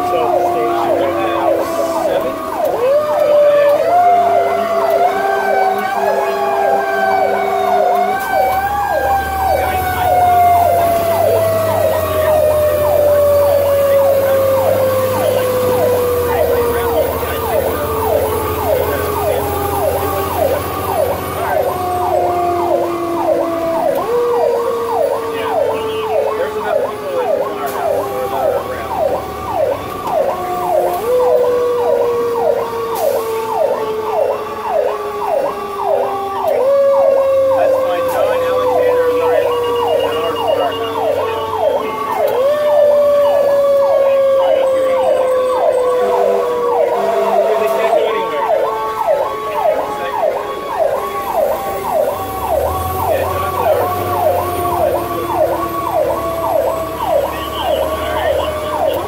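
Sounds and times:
fast yelping siren: 0.0s - 59.0s
mechanical siren wailing: 0.0s - 59.0s.

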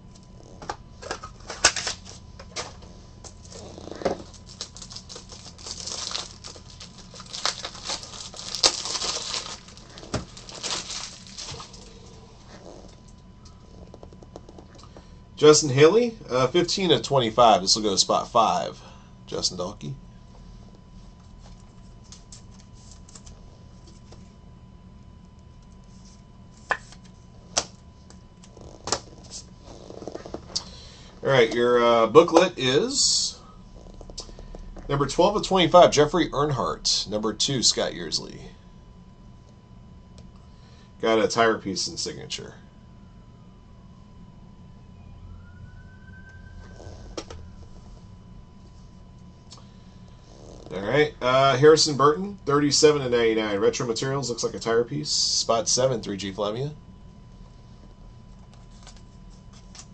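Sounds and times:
plastic card sleeves rustling: 3.4s - 12.0s, 58.4s - 59.9s.

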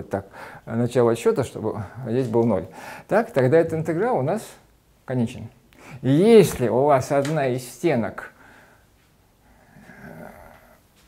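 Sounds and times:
man breathing: 0.3s - 0.7s, 2.7s - 3.1s, 5.7s - 6.0s, 8.4s - 10.8s.

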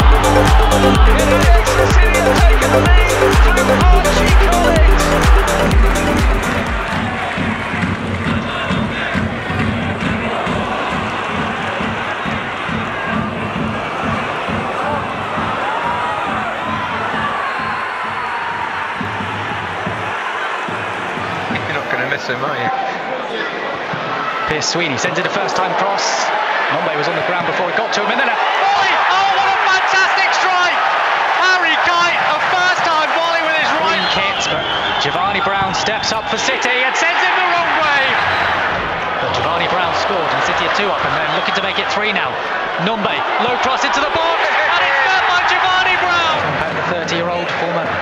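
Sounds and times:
electronic music with heavy beat: 0.0s - 12.2s
stadium crowd noise: 0.0s - 48.0s.

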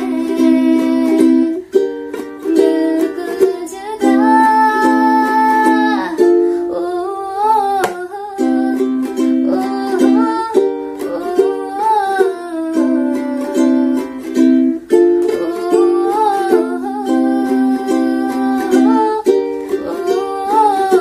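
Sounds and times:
ukulele chords strummed: 0.0s - 21.0s
woman singing: 0.0s - 21.0s.

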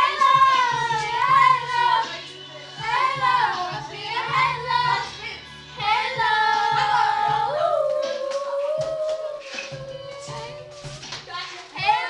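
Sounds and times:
girls singing: 0.0s - 12.0s
karaoke backing track: 0.0s - 12.0s.

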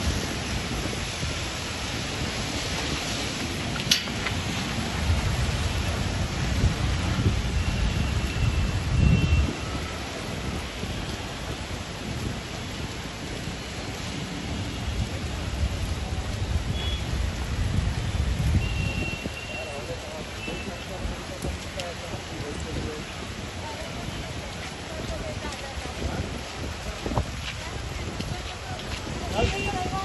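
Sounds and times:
heavy rain on wet road: 0.0s - 30.0s.

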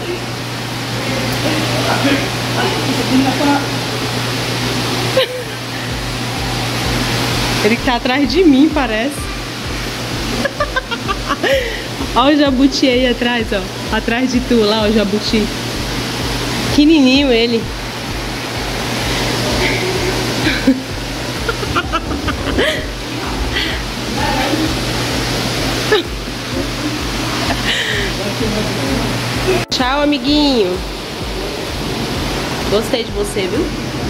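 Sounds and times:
even hiss: 0.0s - 34.0s
low hum: 0.0s - 34.0s
rushing background noise: 0.0s - 34.0s.

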